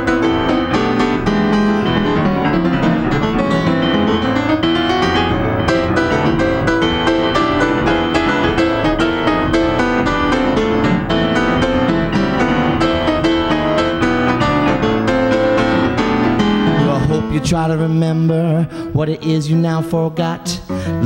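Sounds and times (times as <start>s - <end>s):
solo piano keyboard: 0.0s - 18.6s.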